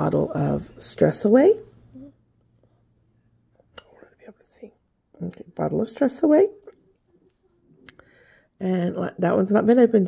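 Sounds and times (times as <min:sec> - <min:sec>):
woman whispering: 0:03.8 - 0:04.8.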